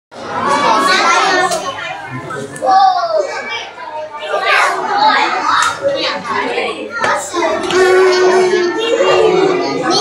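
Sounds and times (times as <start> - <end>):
children talking: 0.1 - 10.0.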